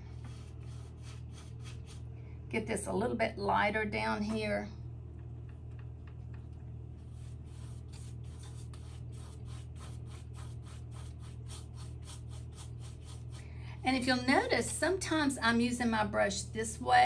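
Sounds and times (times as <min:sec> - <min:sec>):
steady low hum: 0:00.0 - 0:17.0
paintbrush scrubbing on canvas: 0:00.1 - 0:02.1, 0:07.0 - 0:13.5.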